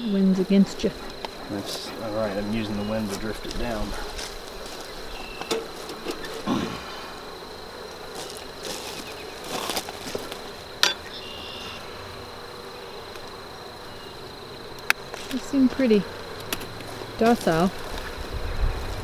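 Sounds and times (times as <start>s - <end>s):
bees buzzing: 0.0s - 19.0s.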